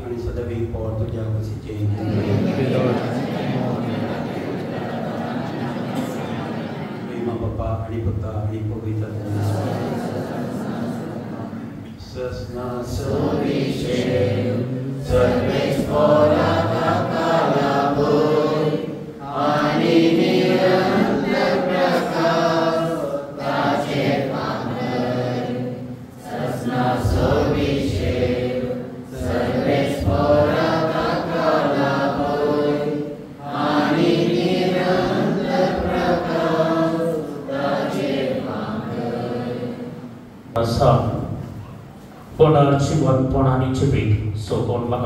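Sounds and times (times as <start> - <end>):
congregation singing a hymn: 0.0 - 41.5.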